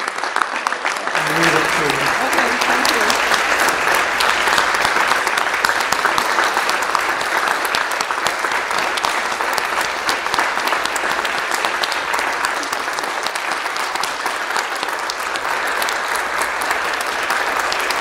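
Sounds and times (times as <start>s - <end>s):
congregation applauding: 0.0s - 18.0s.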